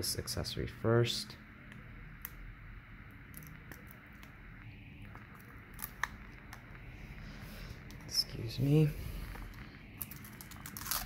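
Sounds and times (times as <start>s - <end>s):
paper seal crinkling and tearing: 9.4s - 11.0s.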